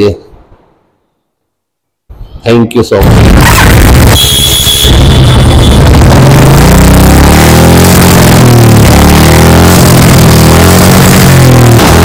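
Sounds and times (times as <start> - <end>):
motorcycle engine revving: 3.1 - 12.0.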